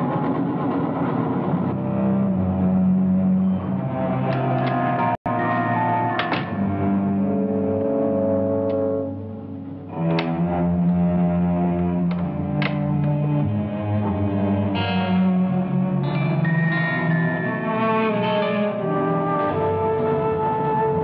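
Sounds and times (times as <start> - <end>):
film score music: 0.0 - 21.0.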